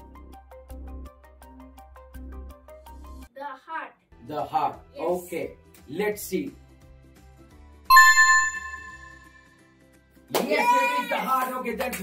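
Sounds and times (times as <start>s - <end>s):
faint background music: 3.2s - 6.7s
bright electronic ding: 7.9s - 9.5s.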